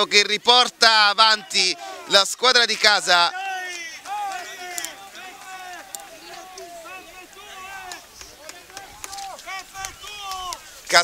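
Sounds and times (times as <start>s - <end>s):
people shouting and calling out: 0.0s - 11.0s.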